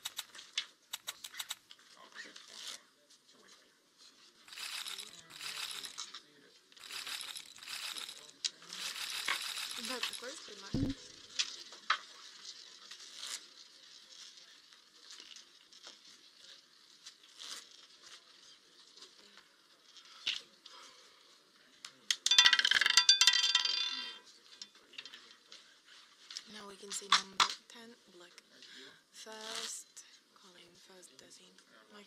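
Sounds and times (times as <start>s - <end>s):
roulette ball clattering: 8.8s - 11.1s, 22.2s - 24.2s.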